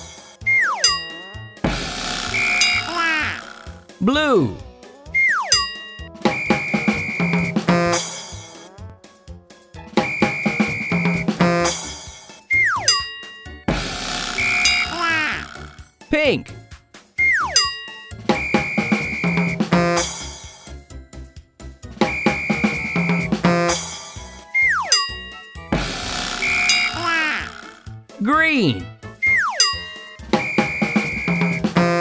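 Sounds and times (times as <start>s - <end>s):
children's background music: 0.0s - 32.0s
ding: 0.8s - 1.3s, 5.5s - 6.1s, 12.8s - 13.5s, 17.5s - 18.2s, 24.8s - 25.7s, 29.5s - 30.2s
short beep: 30.4s - 31.6s.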